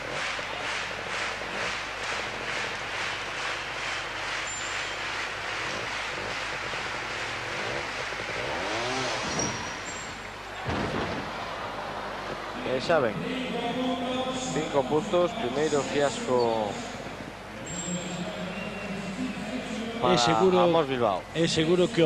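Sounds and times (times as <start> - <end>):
motorcycle engine revving: 0.0 - 12.5
indoor hall noise: 0.0 - 22.0.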